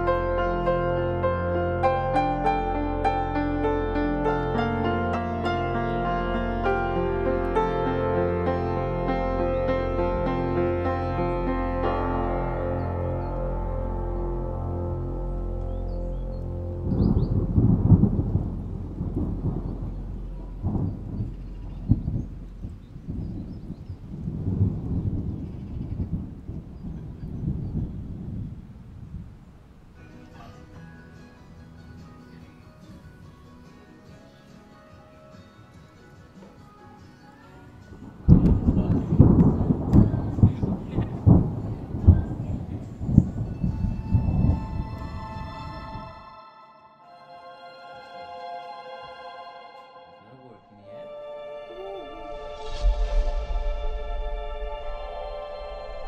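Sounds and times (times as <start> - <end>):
rain falling: 0.0 - 31.1, 37.4 - 46.1
low rumbling thunder: 6.2 - 30.0, 38.0 - 46.1, 52.2 - 56.0.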